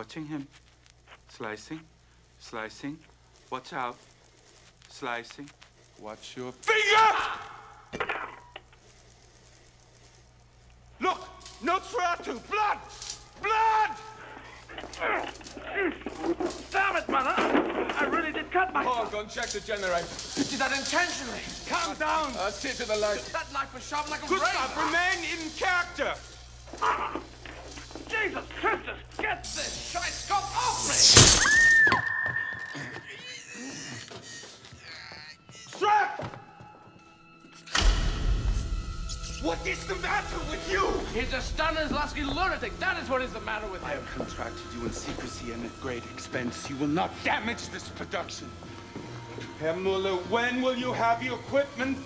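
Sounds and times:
low hum and hiss: 0.0 - 31.8, 37.7 - 52.0
person making cat-like cries: 26.8 - 27.3, 32.7 - 35.5.

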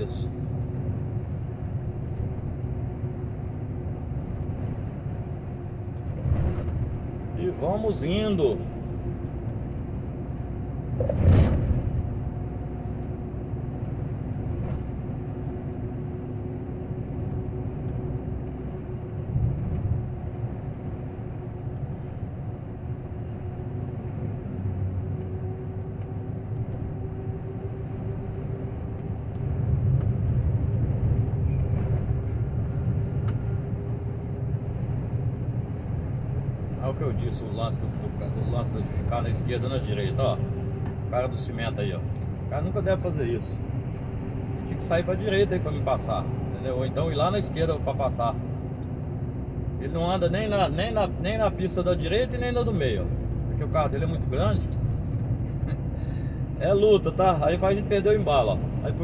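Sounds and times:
road rumble: 0.0 - 59.0
truck engine drone: 0.0 - 59.0.

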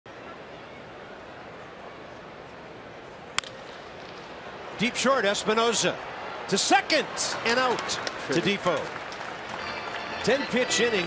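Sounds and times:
baseball bat cracking ball: 3.3 - 4.4
crowd murmur: 5.5 - 11.0.

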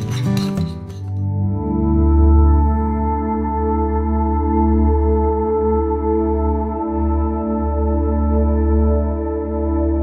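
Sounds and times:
spoon clinking ceramic bowl: 0.0 - 1.2
soft ambient music: 0.0 - 10.0.

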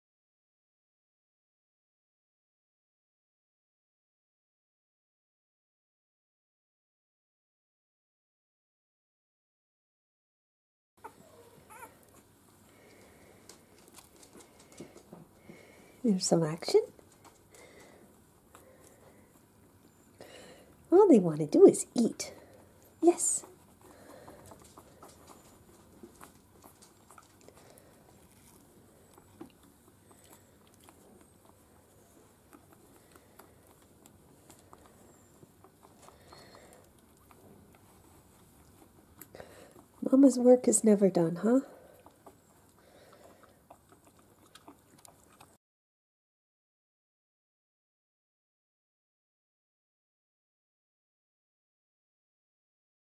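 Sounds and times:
puppies squeaking: 11.0 - 12.4, 23.4 - 39.9.

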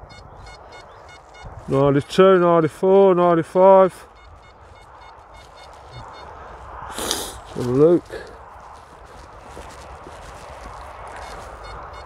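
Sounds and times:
metal detector beeps: 0.0 - 2.9, 3.9 - 6.7, 11.2 - 12.0.

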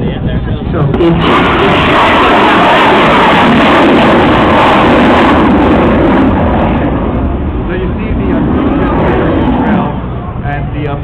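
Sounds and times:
rocket engine rushing overhead: 0.0 - 11.0.

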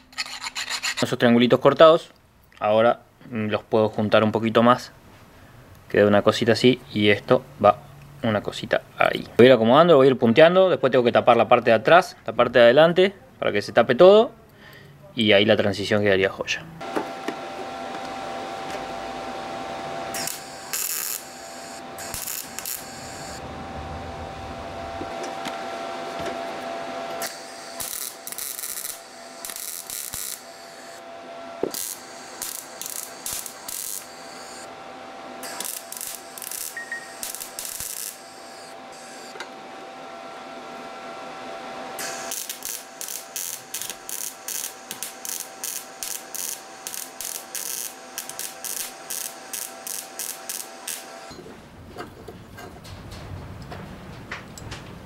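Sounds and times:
welder arc crackling: 20.0 - 34.8, 35.4 - 39.5, 42.0 - 51.3.

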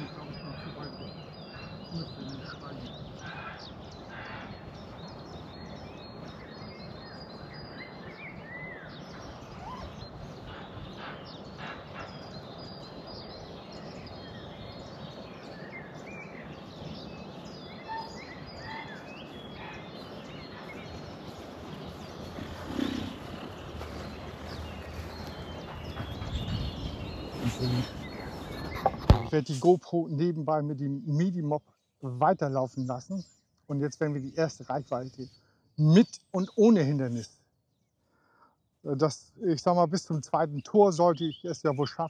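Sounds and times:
background hiss: 0.0 - 31.5
songbird chirps: 0.0 - 42.0.

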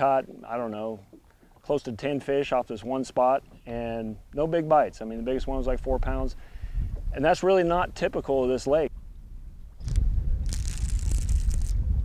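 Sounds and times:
wind buffeting microphone: 5.2 - 12.0
crackling hiss: 9.8 - 11.8.

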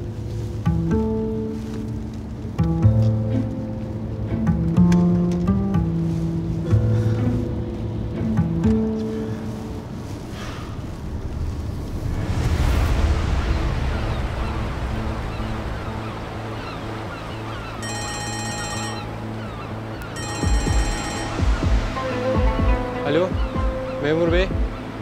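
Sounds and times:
rushing wind and waves noise: 0.0 - 25.0
sustained orchestral tones: 17.8 - 24.0.

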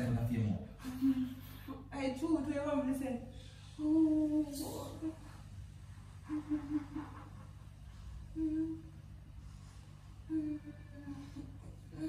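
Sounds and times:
steady low hum: 0.0 - 12.0
woman moaning: 8.3 - 9.0, 10.3 - 12.0.

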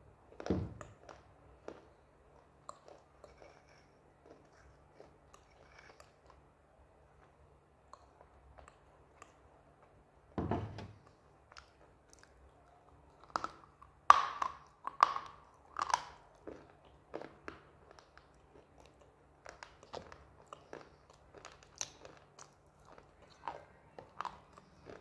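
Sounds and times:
chewing with quiet crunching: 0.3 - 10.2, 11.0 - 25.0.

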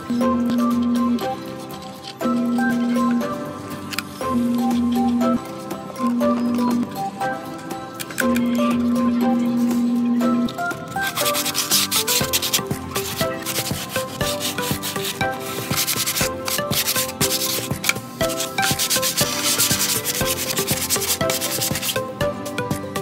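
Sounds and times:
background music: 0.0 - 23.0
hand sanding wood: 11.0 - 22.1.

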